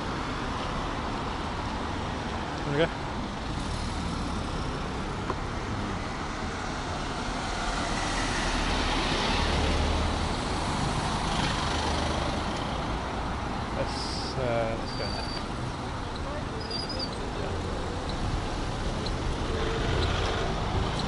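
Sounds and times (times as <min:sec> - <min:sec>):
cars driving past: 0:00.0 - 0:21.0.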